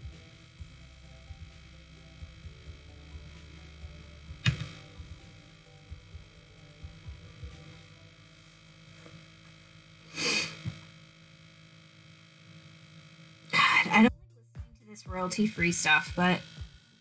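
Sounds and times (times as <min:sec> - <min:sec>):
low hum: 0:00.0 - 0:17.0
quiet background music: 0:00.0 - 0:17.0
soft low thumps: 0:14.0 - 0:16.8.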